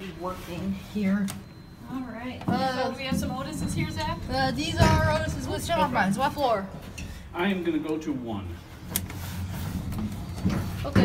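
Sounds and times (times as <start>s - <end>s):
elevator car humming: 1.4s - 6.9s.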